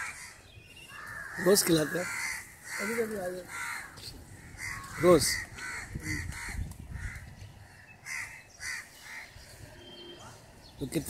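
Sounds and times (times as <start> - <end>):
crows cawing: 0.0 - 10.4.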